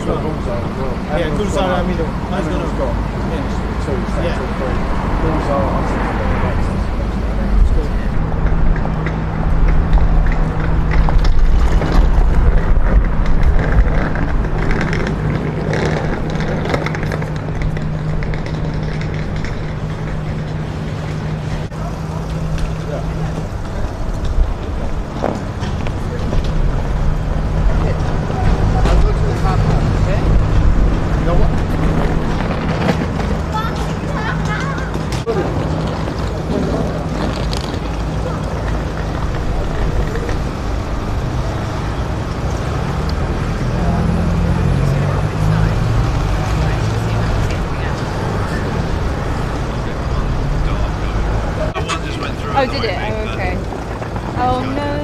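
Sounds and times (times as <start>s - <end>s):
indistinct voices: 0.0s - 55.0s
road traffic rumble: 0.0s - 55.0s.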